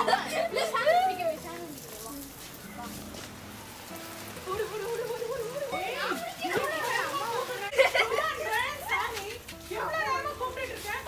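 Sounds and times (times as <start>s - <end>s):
children calling and shouting: 0.0s - 3.0s, 3.7s - 11.0s.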